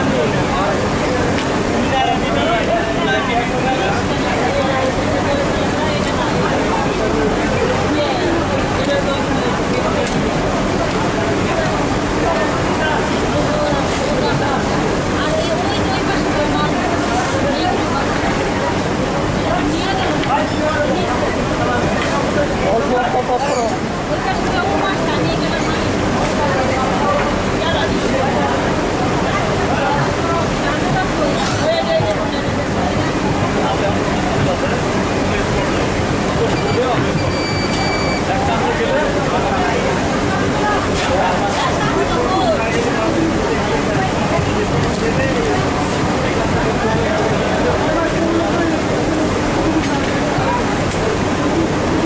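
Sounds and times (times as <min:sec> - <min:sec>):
indistinct chatter: 0:00.0 - 0:52.0
people talking: 0:00.0 - 0:52.0
steady loud factory rush: 0:00.0 - 0:52.0
workroom background noise: 0:00.0 - 0:52.0.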